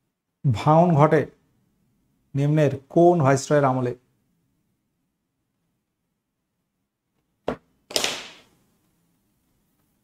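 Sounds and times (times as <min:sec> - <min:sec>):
sharp crack: 0:07.9 - 0:08.5.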